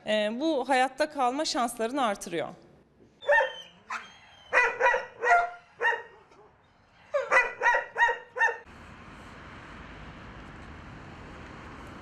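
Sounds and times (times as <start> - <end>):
dog barking: 3.2 - 6.5, 7.2 - 8.6.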